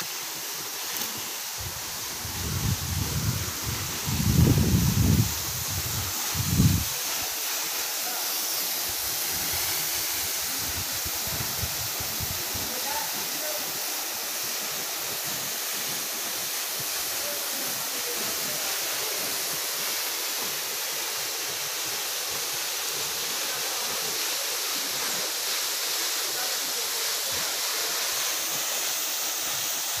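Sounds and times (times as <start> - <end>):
waterfall splashing onto rocks: 0.0 - 30.0.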